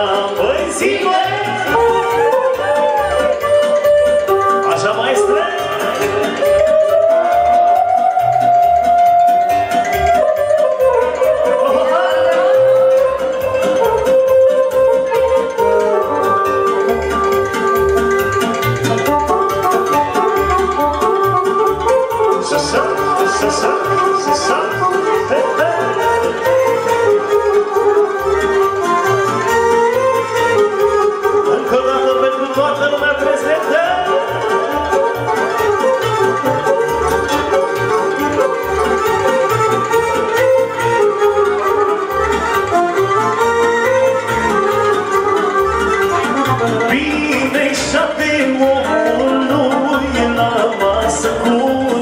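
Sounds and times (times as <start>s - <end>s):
accordion folk dance music: 0.0s - 52.0s
keyboard melody: 0.0s - 52.0s.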